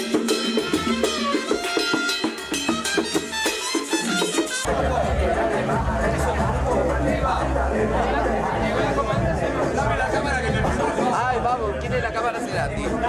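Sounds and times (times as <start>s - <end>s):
crowd chatter in a bar: 0.0s - 13.0s
music with strong bass: 0.0s - 13.0s.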